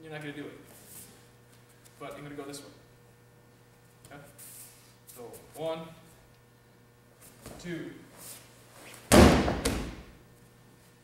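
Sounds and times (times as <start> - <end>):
body thudding on a mat: 9.0 - 10.1
slap on a mat: 9.1 - 10.1.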